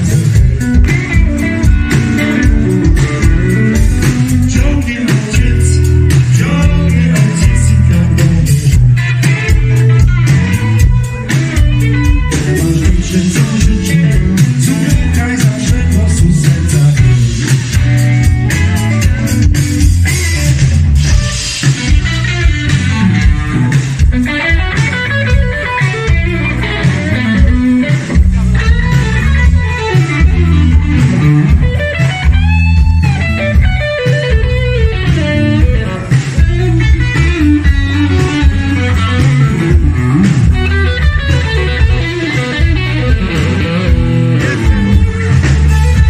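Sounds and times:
bass guitar: 0.0s - 46.0s
drums: 0.0s - 46.0s
electric guitar lines: 0.0s - 46.0s.

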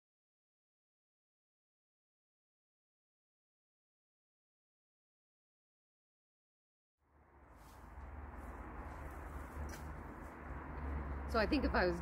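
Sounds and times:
steady low rumble: 7.0s - 12.0s.

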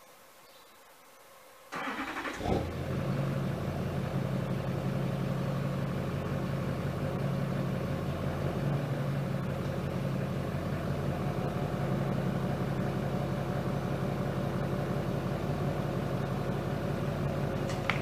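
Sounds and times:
diesel engine starting and idling: 1.7s - 18.0s.

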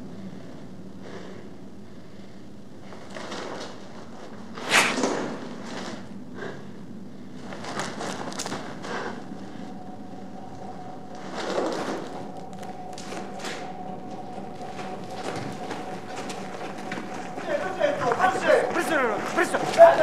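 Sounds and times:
steady hum: 0.0s - 20.0s
indistinct voices: 8.7s - 20.0s.

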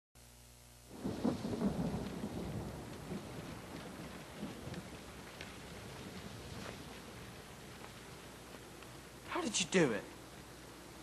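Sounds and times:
steady rain: 0.7s - 11.0s
thunder rumbling: 0.9s - 9.2s.

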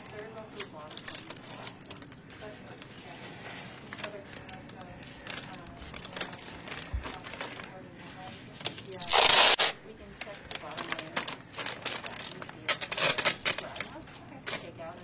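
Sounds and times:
plastic bag crinkling: 0.0s - 15.0s
loud harsh plastic rustle: 8.9s - 9.8s, 10.5s - 14.7s.

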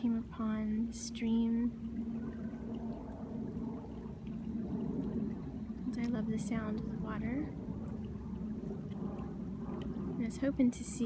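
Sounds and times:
stream flowing over gravel: 1.4s - 11.0s.

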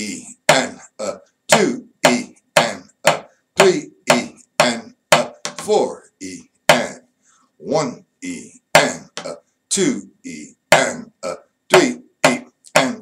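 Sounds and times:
man counting: 0.0s - 13.0s.

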